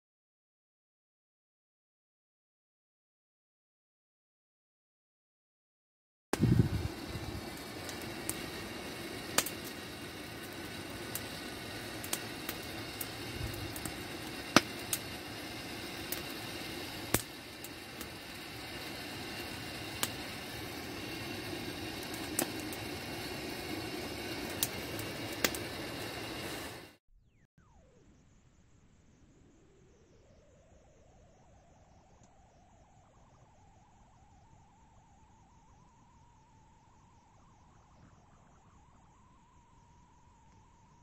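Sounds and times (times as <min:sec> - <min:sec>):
campfire hissing: 0:06.4 - 0:27.0.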